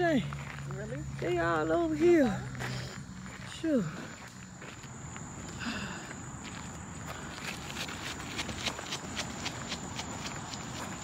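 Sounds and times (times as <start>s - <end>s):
jogging footsteps on pavement: 0.0s - 11.0s.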